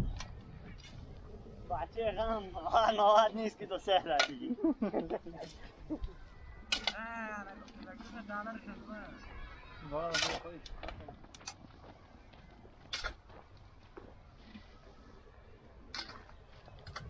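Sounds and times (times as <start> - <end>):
shovel scraping dry soil: 10.1 - 10.4, 12.9 - 13.3.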